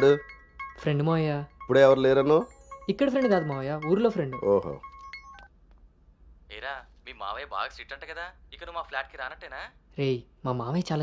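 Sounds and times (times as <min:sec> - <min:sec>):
person speaking: 0:00.0 - 0:04.9
short electronic beeps: 0:00.0 - 0:05.5.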